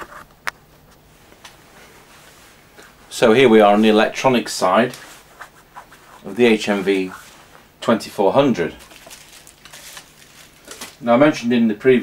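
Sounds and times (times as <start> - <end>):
faint rustling and handling: 0.0 - 11.5
low steady hum: 0.0 - 12.0
soft scrapes: 5.0 - 7.6.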